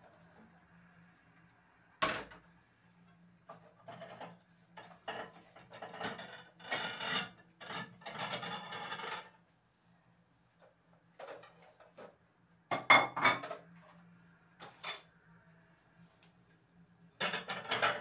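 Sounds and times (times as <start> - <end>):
kitchen rustling and scraping: 3.5 - 9.3, 10.6 - 12.2, 13.0 - 15.2.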